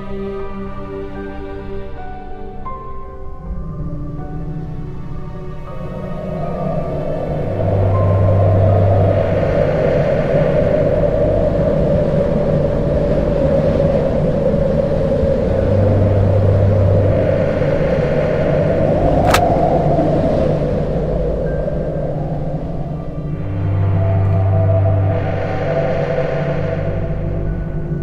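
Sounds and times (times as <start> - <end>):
sharp click: 19.2 - 19.5.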